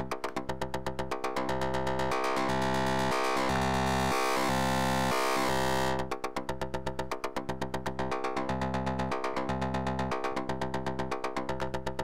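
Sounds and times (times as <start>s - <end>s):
synthesizer plucked notes: 0.0s - 12.0s.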